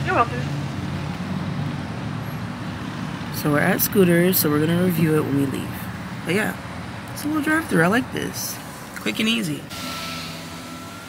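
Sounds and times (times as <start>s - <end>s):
car engine and road hum: 0.0s - 11.0s.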